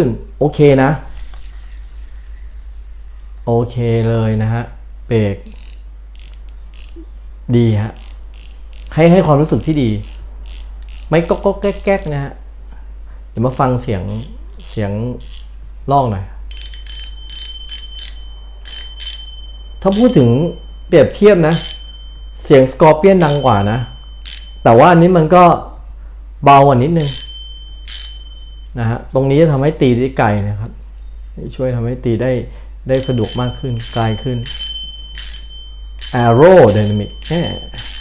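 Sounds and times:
faint steady high ring: 0.0 - 31.4, 32.4 - 38.0
fishing reel clicking: 5.5 - 7.0, 8.0 - 12.2, 13.5 - 15.5, 16.5 - 19.3, 23.2 - 23.6.

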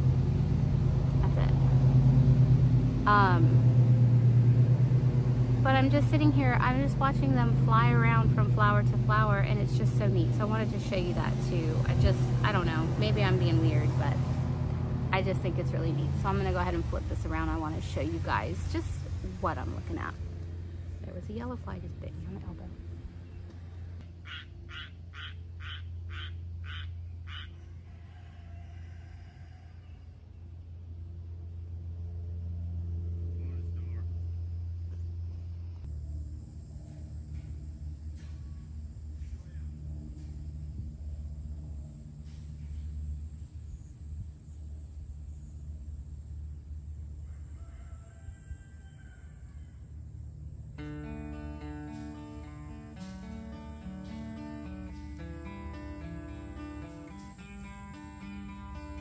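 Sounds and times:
guitar music: 0.0 - 24.0, 50.8 - 59.0
steady low rumble: 0.0 - 27.3, 30.2 - 47.5.

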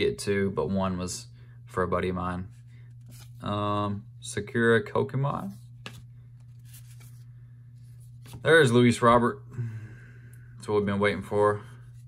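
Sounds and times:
steady low hum: 0.0 - 12.0
cards rustling as flipped: 2.8 - 3.4, 5.6 - 8.7.

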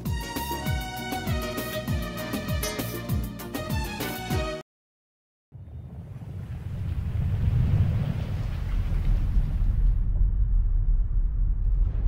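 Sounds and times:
deep rumble: 5.6 - 12.0
windy rush: 5.6 - 12.0.

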